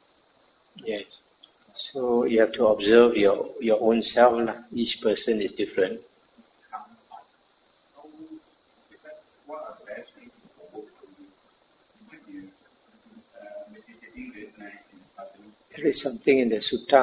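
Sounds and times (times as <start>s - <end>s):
steady high-pitched whine: 0.0s - 17.0s
faint distant voice speaking: 0.8s - 1.2s, 8.0s - 8.4s, 9.0s - 11.3s, 12.0s - 17.0s.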